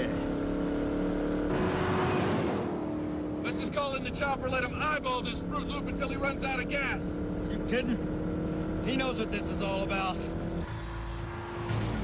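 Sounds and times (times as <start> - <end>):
car engine running hard: 0.0 - 12.0.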